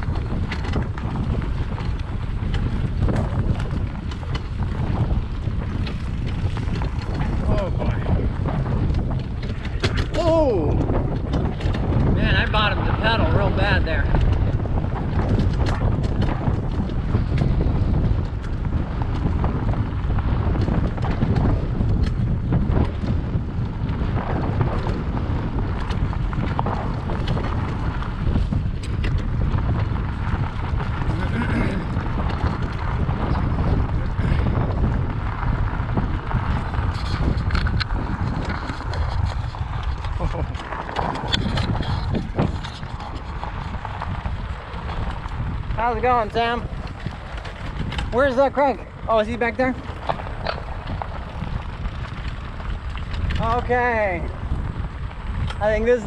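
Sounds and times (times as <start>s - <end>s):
bike clicks and knocks: 0.0s - 12.5s, 14.0s - 53.7s
wind buffeting microphone: 0.0s - 56.0s.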